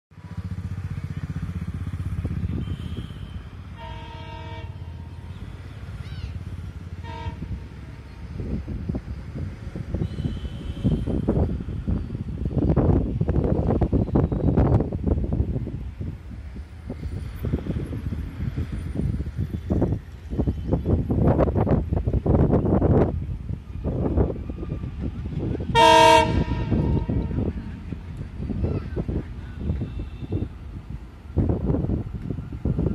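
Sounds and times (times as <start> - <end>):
diesel locomotive horn: 2.4 - 6.0, 6.7 - 8.6, 9.9 - 12.0, 25.6 - 30.8
wind buffeting microphone: 6.3 - 32.9.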